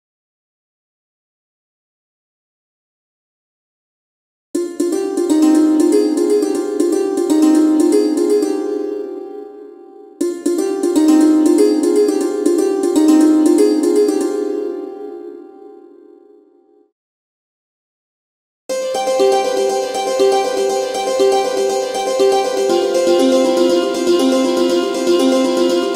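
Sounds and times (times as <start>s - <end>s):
struck metal strings arpeggio: 18.7s - 25.9s.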